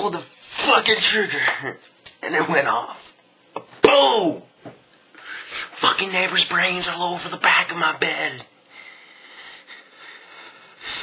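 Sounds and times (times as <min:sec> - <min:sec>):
man speaking: 0:00.0 - 0:04.5, 0:05.7 - 0:08.5
man breathing: 0:05.1 - 0:05.8, 0:08.7 - 0:11.0.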